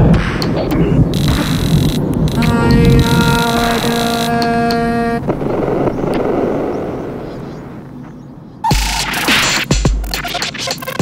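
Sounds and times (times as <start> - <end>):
held synthetic tone: 0.0 - 6.1
rough grainy noise: 0.0 - 8.2.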